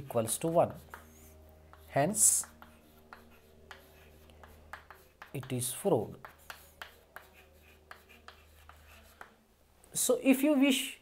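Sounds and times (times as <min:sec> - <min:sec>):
chalk tapping and scratching: 0:00.0 - 0:09.4
low steady hum: 0:00.0 - 0:10.2.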